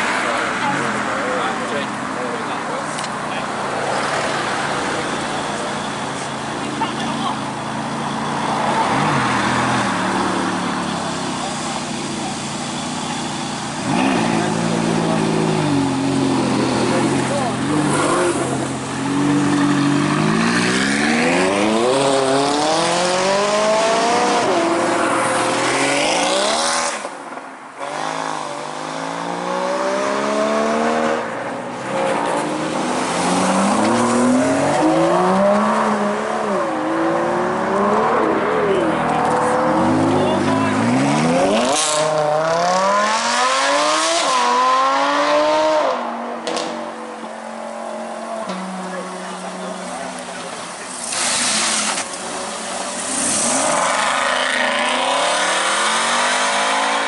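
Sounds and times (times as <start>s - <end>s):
crowd chatter: 0.0s - 27.2s, 27.9s - 57.0s
second sports car engine revving: 0.0s - 57.0s
sports car engine revving: 3.5s - 27.1s, 27.8s - 57.0s.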